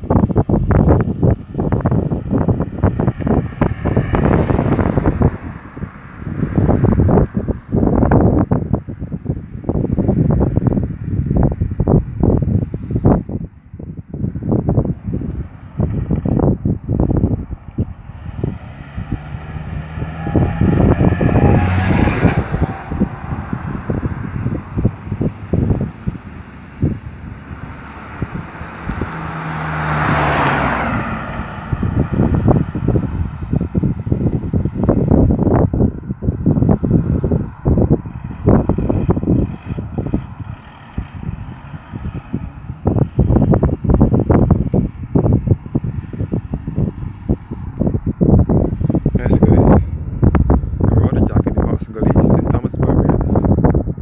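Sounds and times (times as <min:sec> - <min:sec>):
vehicles driving past: 0:00.0 - 0:54.0
wind buffeting microphone: 0:00.0 - 0:54.0.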